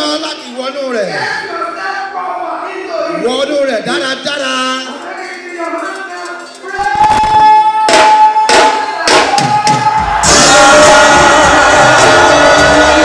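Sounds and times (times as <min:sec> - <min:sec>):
church praise band music: 0:03.9 - 0:13.0
sharp drum strikes: 0:07.0 - 0:12.1.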